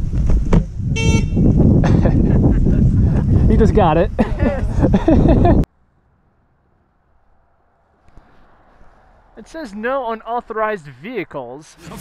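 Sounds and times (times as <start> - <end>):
wind rumbling on microphone: 0.0 - 5.7
short horn toot: 0.9 - 1.6.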